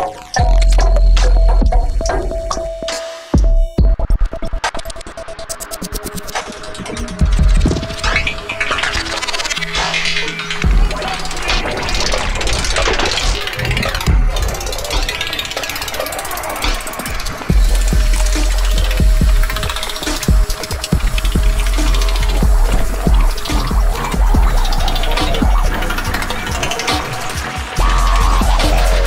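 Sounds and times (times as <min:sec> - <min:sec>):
clicky glitch percussion: 0:00.0 - 0:29.0
deep sub-bass: 0:00.3 - 0:02.9, 0:06.8 - 0:08.7, 0:10.6 - 0:15.3, 0:17.2 - 0:29.0
falling synth sweep: 0:05.8 - 0:29.0.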